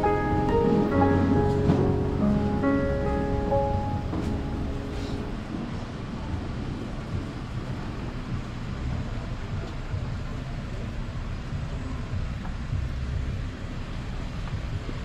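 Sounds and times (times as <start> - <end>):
street background rumble: 0.0 - 15.0.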